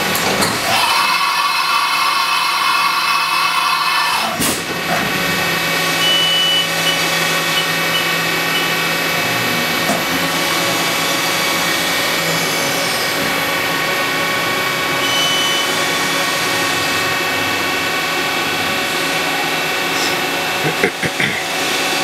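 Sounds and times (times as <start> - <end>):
machine humming and whining: 0.0 - 22.0.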